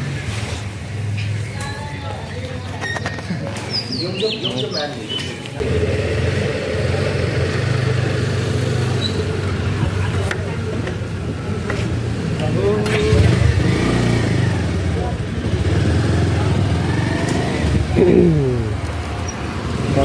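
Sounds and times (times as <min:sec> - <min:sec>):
motorcycle engine pulling away: 0:05.6 - 0:10.2, 0:12.5 - 0:20.0.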